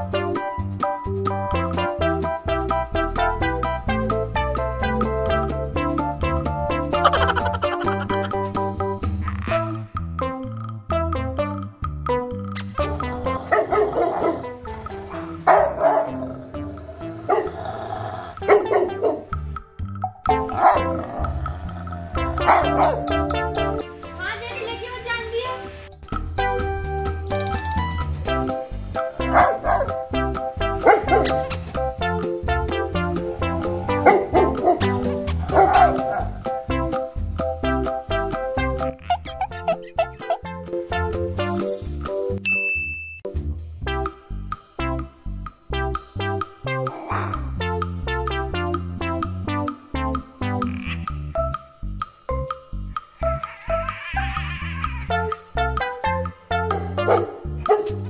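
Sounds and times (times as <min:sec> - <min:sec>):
background music: 0:00.0 - 0:58.0
dogs barking: 0:13.2 - 0:19.4, 0:20.4 - 0:23.2, 0:29.2 - 0:31.8, 0:33.1 - 0:36.6, 0:39.0 - 0:40.5, 0:56.5 - 0:58.0
bright ding sound effect: 0:42.4 - 0:43.4.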